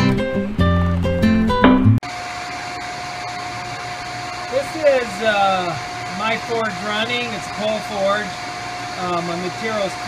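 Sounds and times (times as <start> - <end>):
acoustic guitar music: 0.0 - 2.0
steady hum: 1.7 - 10.0
forge air blast rushing: 2.5 - 10.0.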